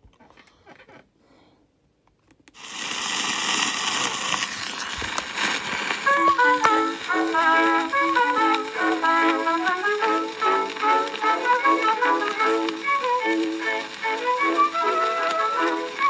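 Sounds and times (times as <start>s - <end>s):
old record hiss and crackle: 0.0s - 16.0s
orchestral music with bouncy notes: 6.1s - 16.0s.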